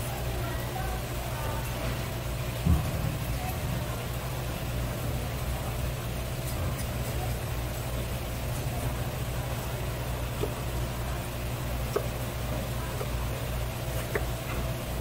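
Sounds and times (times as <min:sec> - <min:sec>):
low machine hum: 0:00.0 - 0:15.0.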